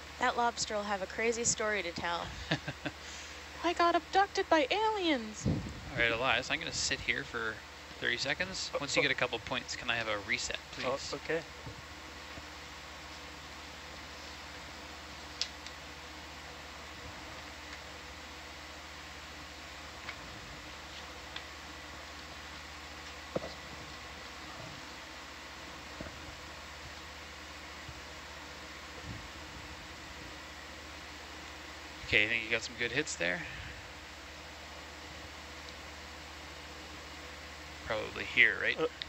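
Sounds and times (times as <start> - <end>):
electrical hum: 0.0 - 39.0.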